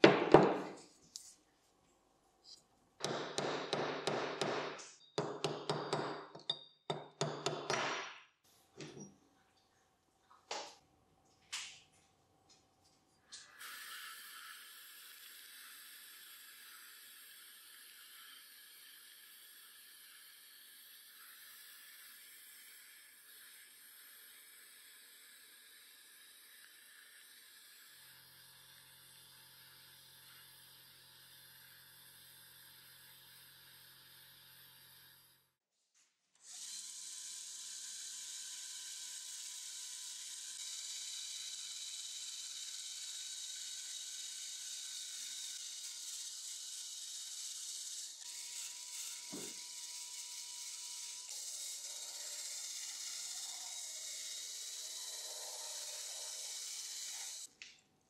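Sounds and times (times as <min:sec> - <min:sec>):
rotary tool wire wheel whine: 0:13.2 - 0:35.6, 0:36.4 - 0:57.5.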